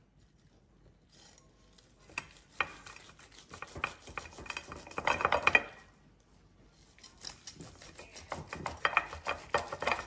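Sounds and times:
blade scraping a plate: 0:02.1 - 0:05.8, 0:07.1 - 0:10.0
knife sawing through meat: 0:02.2 - 0:05.2, 0:06.8 - 0:10.0.

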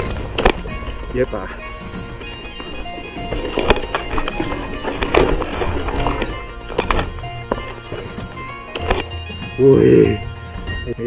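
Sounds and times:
mountain bike rattling over rocks: 0:00.0 - 0:10.9
background music: 0:00.0 - 0:11.0.

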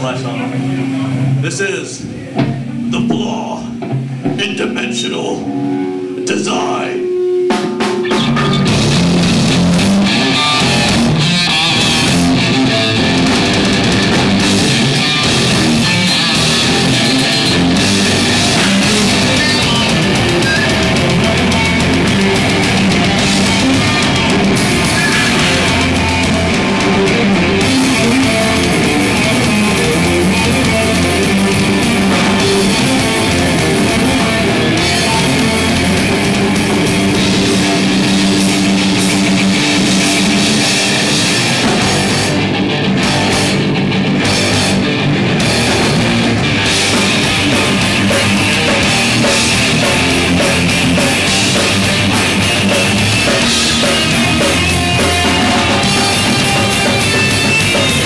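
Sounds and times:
drum kit: 0:00.0 - 0:06.5, 0:07.3 - 0:58.0
electric guitar: 0:00.0 - 0:58.0.

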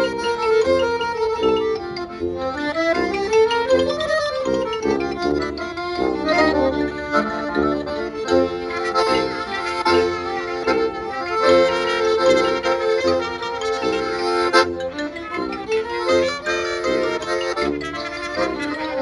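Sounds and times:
accordion: 0:00.0 - 0:19.0
band playing dance tune: 0:00.0 - 0:19.0.

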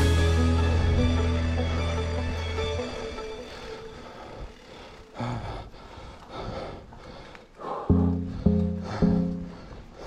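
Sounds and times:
background music: 0:00.0 - 0:04.4, 0:07.9 - 0:09.8.

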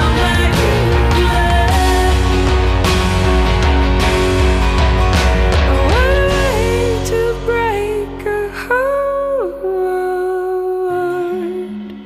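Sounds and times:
woman singing: 0:00.0 - 0:02.7, 0:05.7 - 0:12.0
acoustic guitar: 0:00.0 - 0:12.0.

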